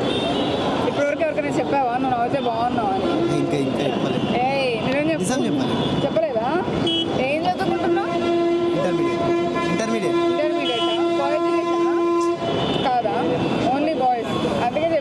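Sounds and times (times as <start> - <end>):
people talking: 7.2 - 8.2
horn blast: 7.7 - 12.6.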